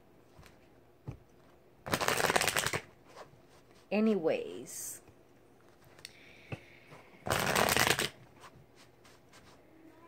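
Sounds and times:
cards riffle shuffling: 0:01.8 - 0:03.2, 0:07.2 - 0:08.5.

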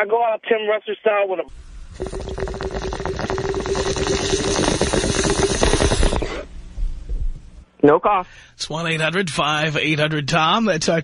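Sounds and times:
water bubbling through a bong: 0:01.7 - 0:06.5
hiss of inhaling: 0:01.9 - 0:06.5.

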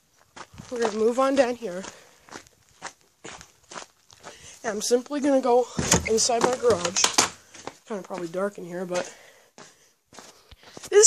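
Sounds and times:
footsteps on gritty ground: 0:00.0 - 0:11.0.

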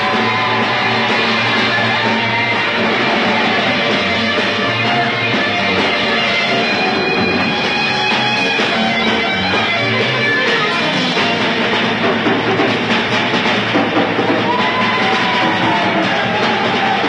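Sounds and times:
drum kit: 0:00.0 - 0:17.0
electric guitar: 0:00.0 - 0:17.0.

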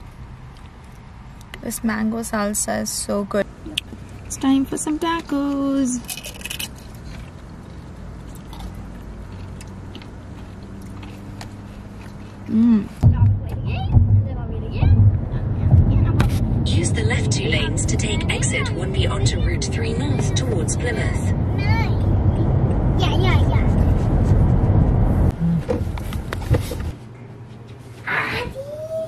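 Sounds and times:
car road rumble inside cabin: 0:03.7 - 0:26.9
high-pitched voices talking: 0:12.5 - 0:23.8, 0:28.0 - 0:29.0.

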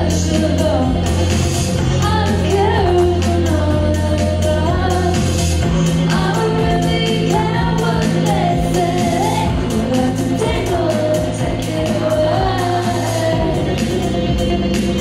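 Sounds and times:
woman singing: 0:00.0 - 0:01.2, 0:01.8 - 0:05.4, 0:06.0 - 0:14.0
electric bass notes: 0:00.0 - 0:15.0.

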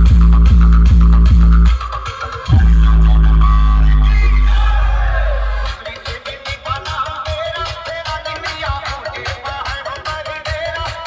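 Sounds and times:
loud dance music: 0:00.0 - 0:11.0.

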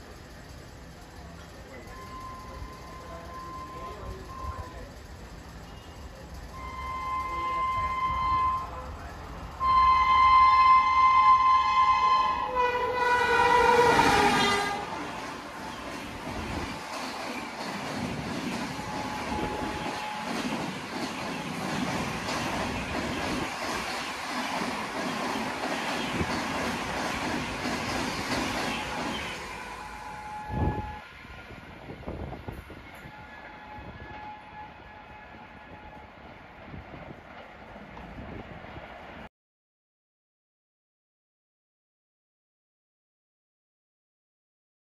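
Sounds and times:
train wheels on rails: 0:00.0 - 0:39.3
locomotive horn: 0:06.5 - 0:08.9, 0:09.6 - 0:15.7, 0:18.7 - 0:20.4, 0:28.8 - 0:31.2, 0:32.8 - 0:36.2.

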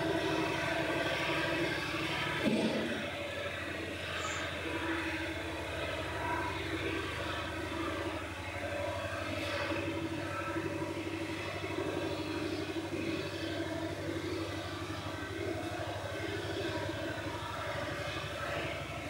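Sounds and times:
droning rumble: 0:00.0 - 0:19.0
steady low hum: 0:00.0 - 0:19.0.

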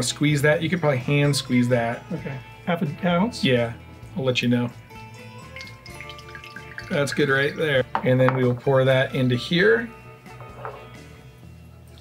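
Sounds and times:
soft background music: 0:00.0 - 0:12.0
juice dripping into metal cup: 0:05.2 - 0:07.8.

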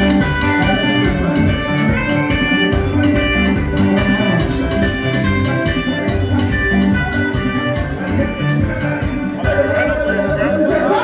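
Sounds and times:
live band music: 0:00.0 - 0:11.0
steady drum beat: 0:00.0 - 0:11.0.

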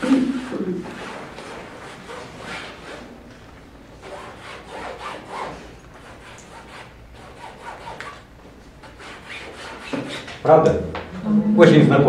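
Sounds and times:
painting tool rubbing on canvas: 0:00.0 - 0:03.2, 0:04.0 - 0:10.5.

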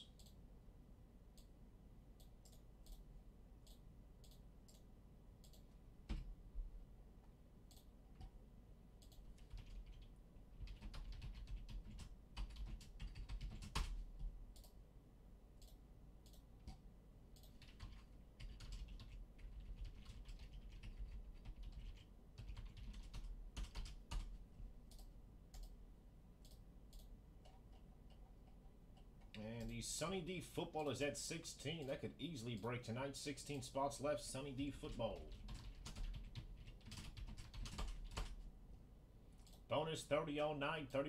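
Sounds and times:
keyboard typing: 0:09.0 - 0:14.8, 0:17.4 - 0:25.8, 0:34.6 - 0:38.4.

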